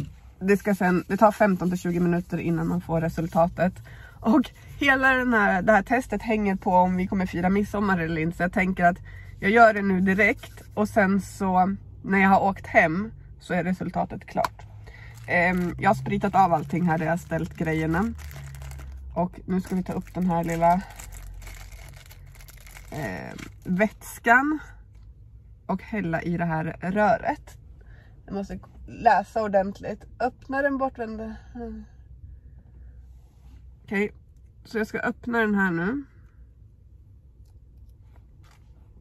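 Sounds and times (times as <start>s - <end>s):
low steady rumble: 0.0s - 39.0s
plastic packaging crinkling: 15.0s - 23.7s.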